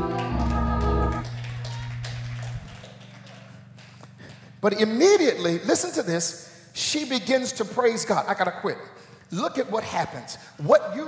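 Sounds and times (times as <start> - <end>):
organ holding low notes: 0.0 - 2.8.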